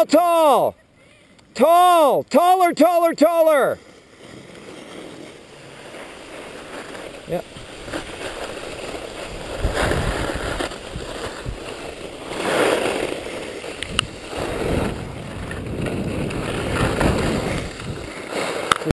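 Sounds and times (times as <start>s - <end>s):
skis carving on snow: 1.5s - 18.9s.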